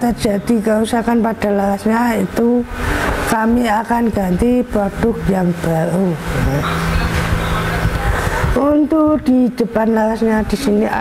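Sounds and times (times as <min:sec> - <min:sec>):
vehicle engine hum: 0:00.0 - 0:09.0
road noise hiss: 0:00.9 - 0:08.6.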